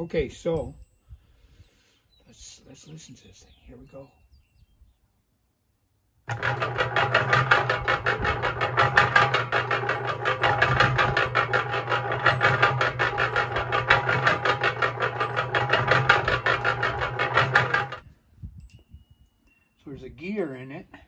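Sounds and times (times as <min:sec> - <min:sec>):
concrete mixer motor hum: 0:06.3 - 0:18.0
drive gear clatter: 0:06.3 - 0:18.0.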